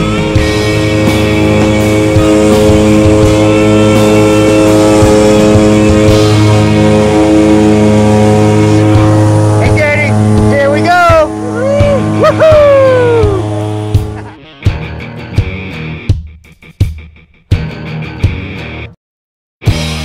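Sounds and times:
plane engine running: 0.0 - 15.9
voices: 9.5 - 13.5.

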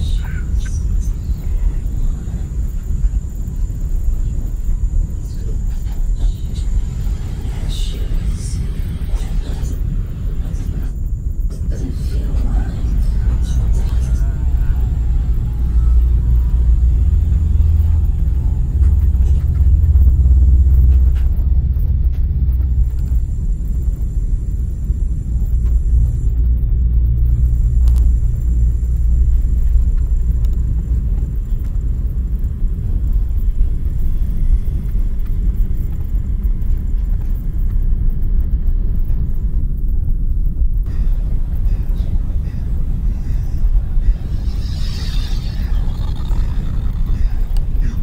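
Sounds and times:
faint high whine: 0.0 - 48.0
low electronic drone rumble: 0.0 - 48.0.

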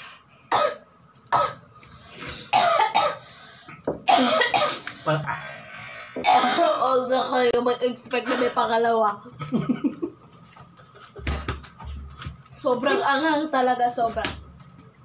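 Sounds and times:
people coughing: 0.5 - 1.6, 2.4 - 3.3, 4.0 - 5.4, 6.2 - 6.9
laughter: 9.4 - 11.3.

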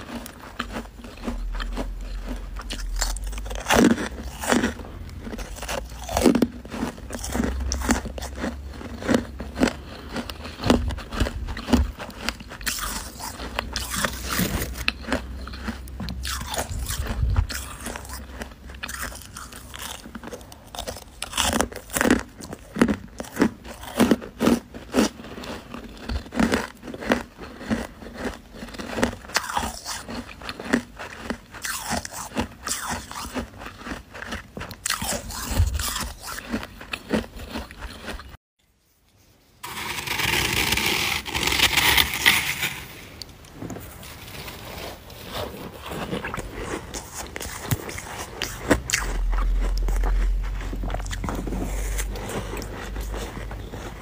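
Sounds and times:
chewing crunchy frost: 0.0 - 38.4, 43.2 - 54.0.

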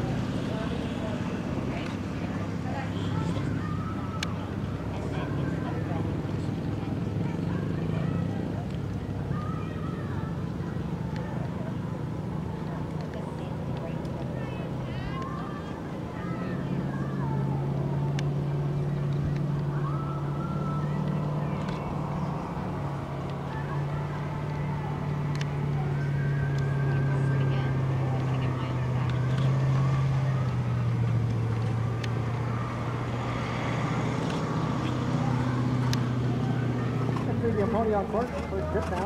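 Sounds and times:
engine humming: 0.0 - 39.0
faint distant voices: 0.0 - 39.0.

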